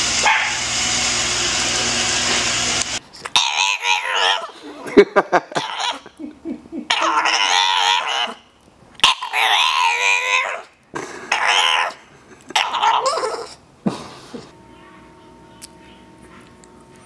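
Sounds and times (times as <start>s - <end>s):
puppy wavering calls: 3.3s - 4.6s, 5.5s - 6.1s, 6.9s - 8.4s, 9.0s - 10.7s, 11.3s - 13.6s.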